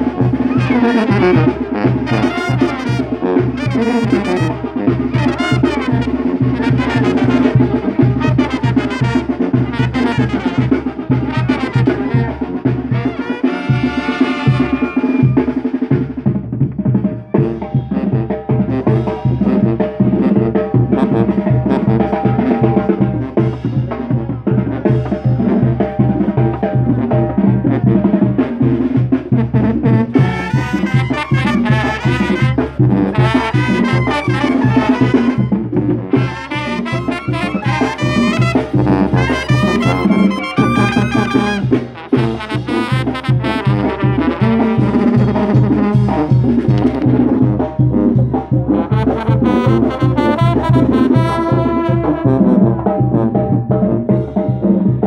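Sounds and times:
trumpets: 0.0 - 16.1, 17.3 - 54.1
brass band music: 0.0 - 55.0
steady drum beat: 0.0 - 55.0.

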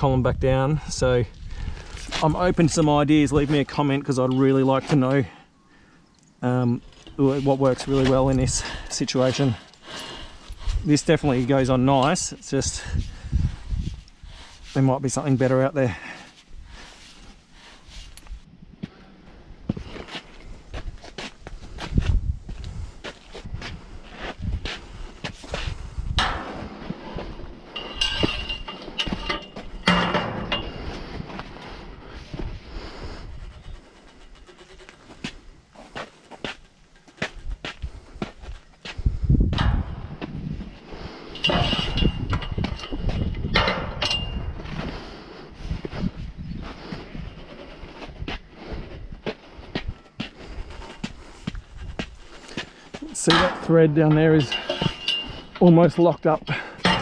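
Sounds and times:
pipe wrench clanking on metal: 26.2 - 31.4, 41.2 - 44.5, 52.5 - 57.0.

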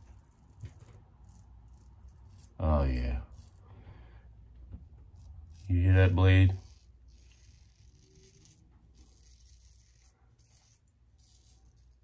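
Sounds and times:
razor rasping through stubble: 0.0 - 3.8, 4.8 - 12.0.

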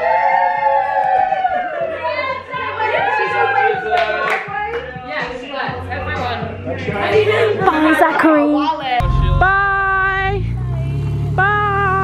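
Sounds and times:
music: 0.4 - 10.3
people laughing: 0.8 - 5.0, 6.6 - 8.6
car engine running low: 9.0 - 12.0.

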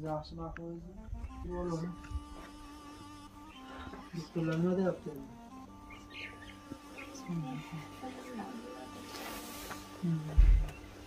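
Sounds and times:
faint steady musical tone: 0.2 - 9.0.

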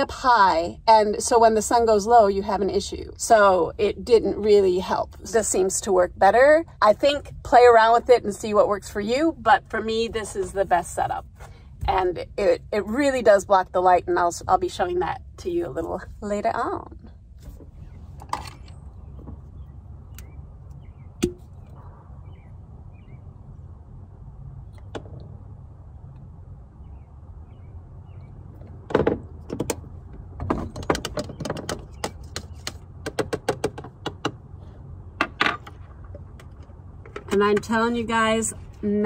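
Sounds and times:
low rumble: 14.0 - 30.9.

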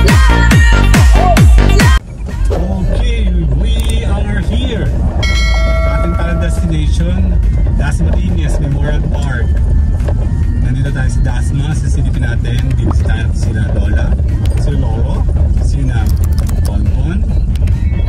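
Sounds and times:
car driving rumble: 0.0 - 18.0
music playing: 0.0 - 18.0.

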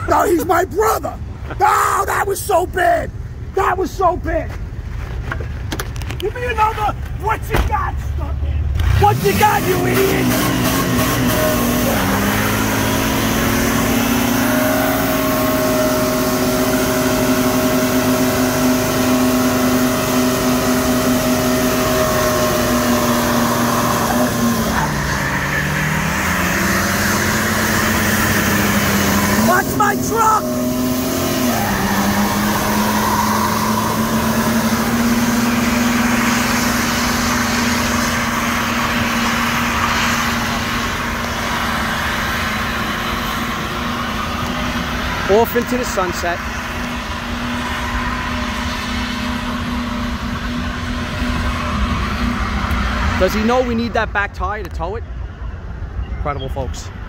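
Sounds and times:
tire spinning on asphalt: 3.6 - 54.4
pickup engine revving high: 8.7 - 54.2.

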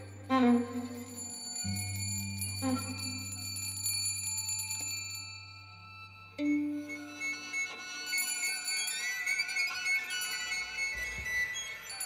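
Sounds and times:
small hand bell tinkling: 0.7 - 5.8, 8.1 - 10.7.

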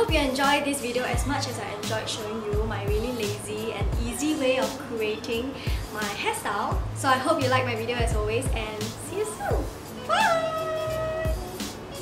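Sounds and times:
light background music: 0.0 - 12.0
woman's sing-song call: 9.2 - 11.5.

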